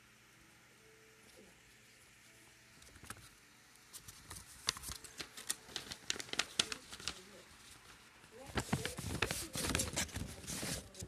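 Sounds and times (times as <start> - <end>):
paper envelope crinkling: 2.8 - 11.0.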